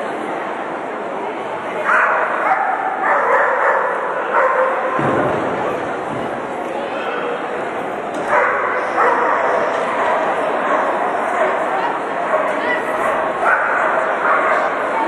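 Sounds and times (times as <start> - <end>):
arena crowd noise: 0.0 - 15.0.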